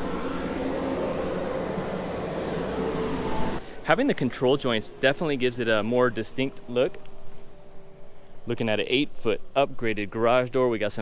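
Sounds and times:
steady motor hum: 0.0 - 8.4.

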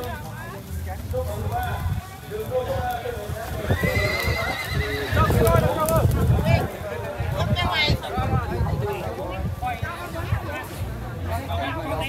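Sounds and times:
murmur of voices: 0.0 - 12.0
horse whinnying: 3.6 - 5.6.

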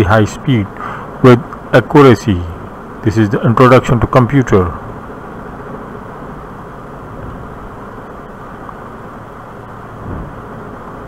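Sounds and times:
low background noise: 0.0 - 11.0.

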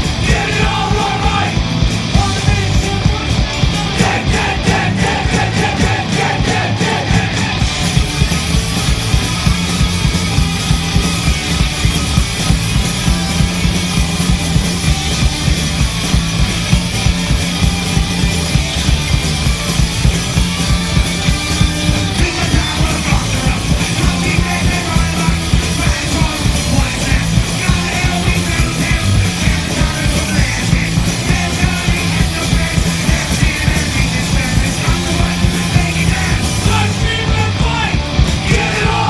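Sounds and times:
fast drum beat: 0.0 - 39.0
punk rock band playing live: 0.0 - 39.0.

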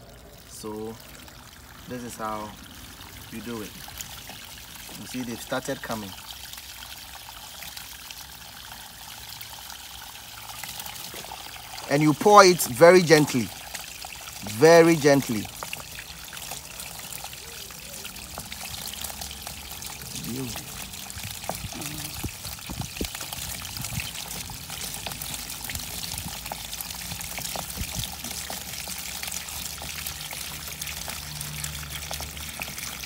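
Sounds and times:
water pouring and trickling: 0.0 - 33.0.

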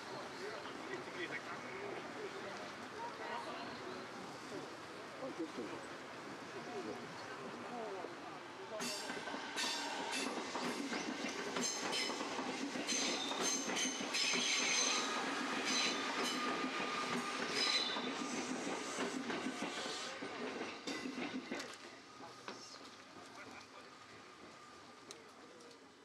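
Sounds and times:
train running on rails: 0.0 - 26.0.

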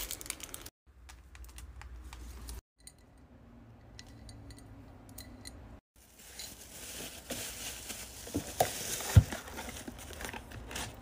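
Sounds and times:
packaging crinkling and rustling: 0.0 - 2.6, 6.0 - 11.0.

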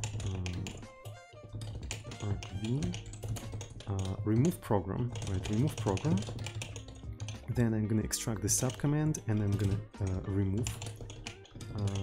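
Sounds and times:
keyboard keystrokes: 0.0 - 7.7, 8.5 - 12.0.

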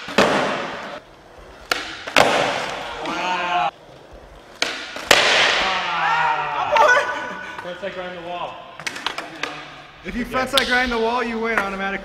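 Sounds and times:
skateboard popping and landing: 0.0 - 3.2, 4.2 - 5.7
skateboard wheels rolling: 0.0 - 6.8
person yelling: 2.9 - 3.7, 5.6 - 7.3.

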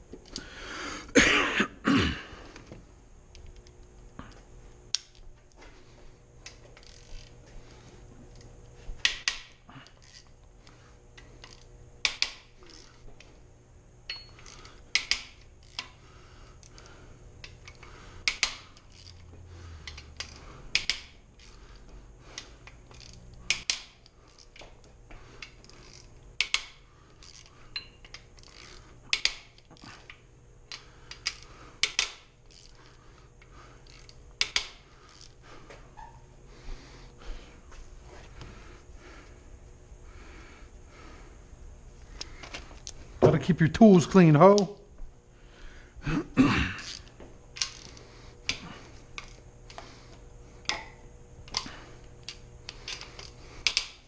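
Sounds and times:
ratchet wrench clicking: 6.4 - 7.4, 8.3 - 10.3, 11.2 - 12.9, 14.1 - 16.0, 17.4 - 21.6, 22.4 - 24.7, 25.4 - 33.0, 33.8 - 35.4, 46.8 - 48.6, 49.2 - 49.8, 50.6 - 54.0.

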